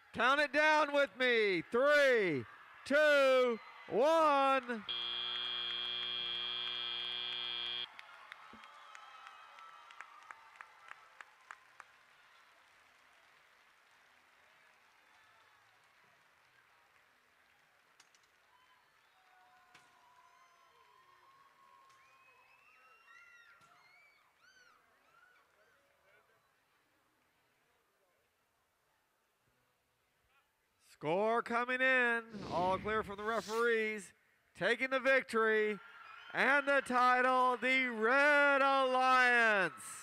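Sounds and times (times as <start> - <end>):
crowd applause and cheering: 1.4 - 17.8, 35.4 - 40.0
arena horn steady tone: 4.9 - 7.9.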